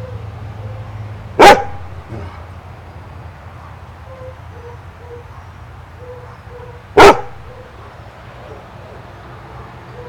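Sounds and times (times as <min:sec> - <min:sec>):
dog barking: 0:01.4 - 0:02.4, 0:04.6 - 0:08.0.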